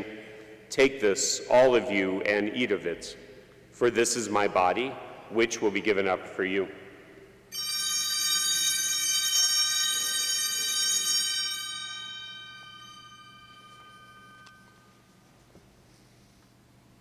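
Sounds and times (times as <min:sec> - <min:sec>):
altar bell ringing: 0:07.5 - 0:15.2.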